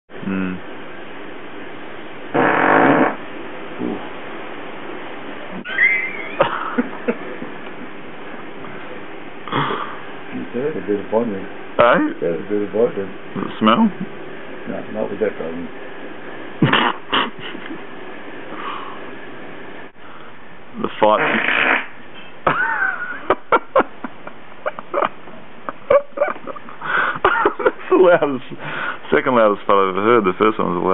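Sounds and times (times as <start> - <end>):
man farting: 2.3 - 3.2, 16.6 - 17.4, 21.2 - 22.0
high squeak: 5.6 - 6.4
stifled giggling: 5.7 - 7.9, 16.6 - 17.8, 22.5 - 28.2.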